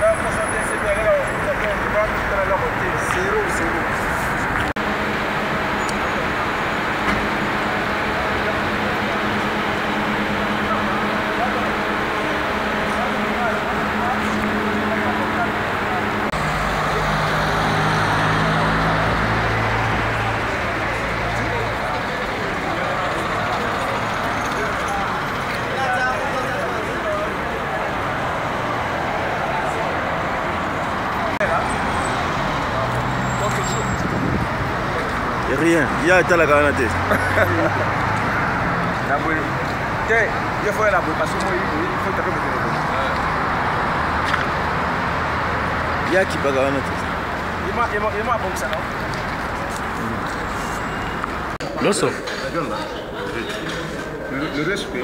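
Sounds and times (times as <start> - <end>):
city street traffic hum: 0.0 - 55.0
passing vehicles: 0.0 - 55.0
people's voices: 0.0 - 55.0.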